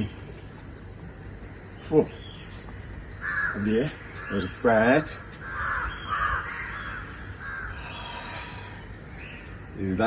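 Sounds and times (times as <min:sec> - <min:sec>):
crow cawing: 0:02.8 - 0:10.0.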